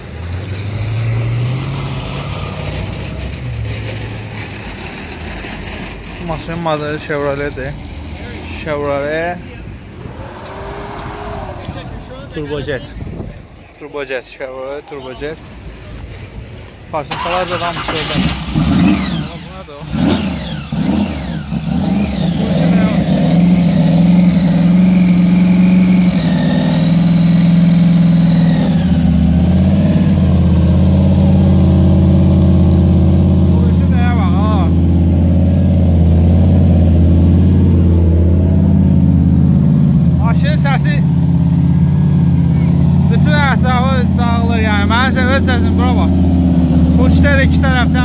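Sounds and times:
supercharged car engine idling: 0:17.0 - 0:48.0.

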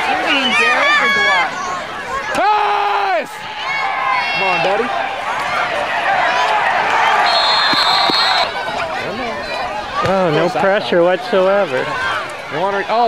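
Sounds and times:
crowd cheering and yelling: 0:00.0 - 0:13.0
shrill whistle: 0:07.0 - 0:08.5.

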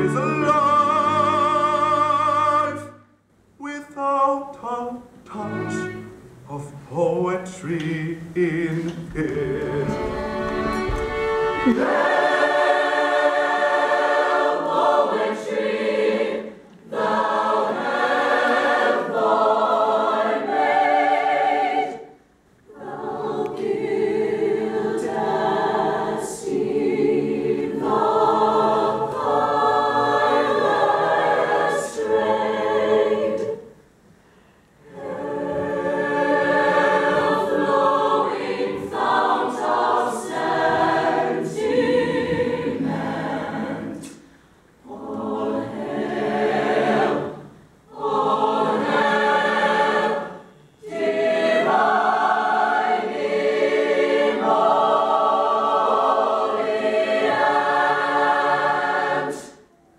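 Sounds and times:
mixed chorus singing unaccompanied: 0:00.0 - 0:03.0, 0:04.3 - 0:33.8, 0:34.8 - 0:59.7.

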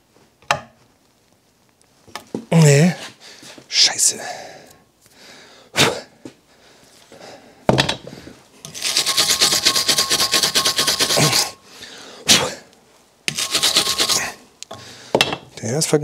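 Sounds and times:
hand tool scrubbing metal screw: 0:08.6 - 0:11.6, 0:13.3 - 0:14.4.

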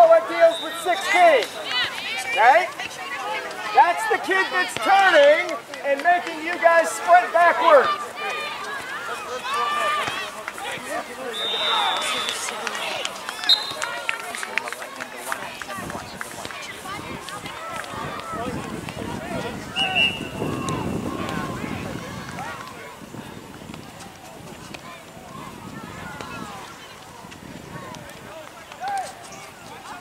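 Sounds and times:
voices calling out: 0:00.0 - 0:30.0
high whistle tones: 0:11.3 - 0:12.5, 0:19.7 - 0:20.5.

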